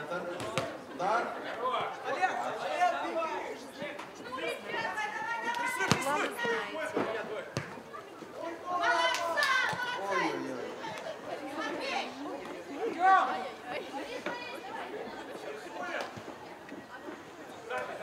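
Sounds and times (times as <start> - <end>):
people calling out and chattering: 0.0 - 18.0.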